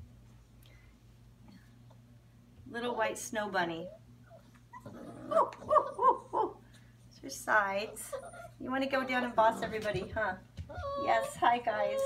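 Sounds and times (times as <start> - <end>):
puppy whimpering: 3.9 - 6.5, 7.8 - 8.6, 10.7 - 12.0.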